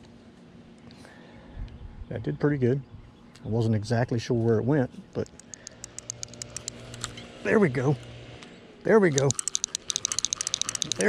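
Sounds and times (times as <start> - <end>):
fishing reel clicking: 5.2 - 7.1, 9.1 - 11.0.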